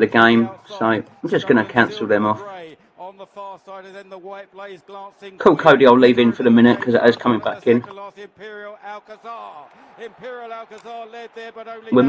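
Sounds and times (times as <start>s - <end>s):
man commentating: 0.0s - 12.0s.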